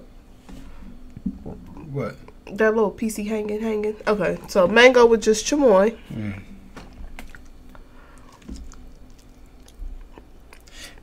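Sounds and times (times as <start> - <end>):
person chewing: 6.1 - 11.0
wet mouth clicks: 6.9 - 10.9.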